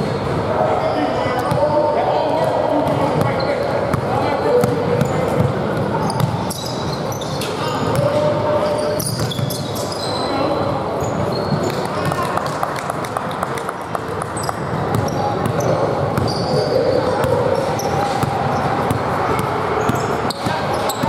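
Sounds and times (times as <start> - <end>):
echoing chatter: 0.0 - 21.0
sneaker squeaks: 2.8 - 12.2, 14.3 - 21.0.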